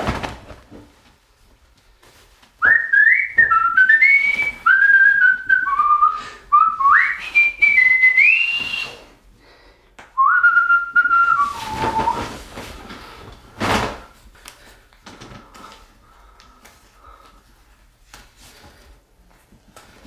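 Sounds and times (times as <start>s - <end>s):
person whistling a tune: 2.6s - 9.1s, 10.2s - 12.4s.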